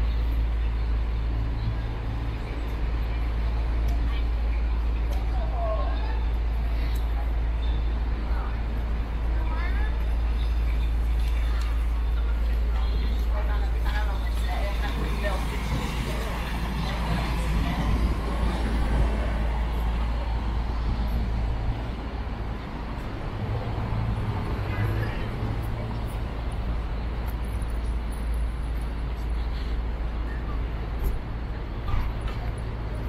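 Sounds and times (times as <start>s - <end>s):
deep traffic rumble: 0.0s - 33.0s
passers-by talking: 0.0s - 33.0s.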